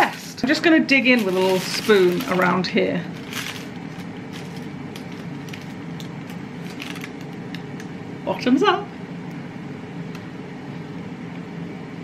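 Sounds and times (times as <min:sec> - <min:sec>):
air fryer fan hum: 0:00.0 - 0:12.0.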